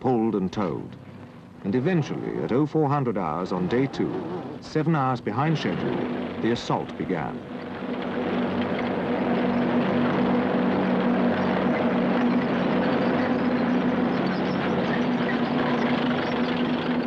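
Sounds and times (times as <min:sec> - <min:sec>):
rumble of running gear: 0:00.0 - 0:17.0
tank engine drone: 0:00.0 - 0:17.0.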